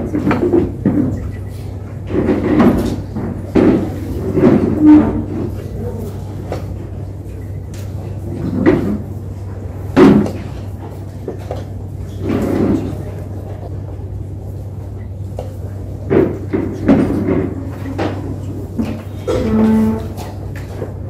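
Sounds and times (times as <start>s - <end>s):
murmur of voices: 0.0s - 21.0s
steady low hum: 0.0s - 21.0s.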